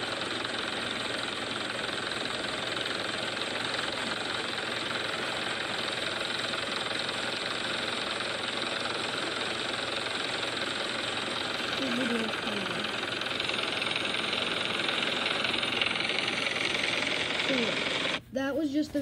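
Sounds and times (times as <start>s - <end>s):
helicopter hovering: 0.0s - 18.5s.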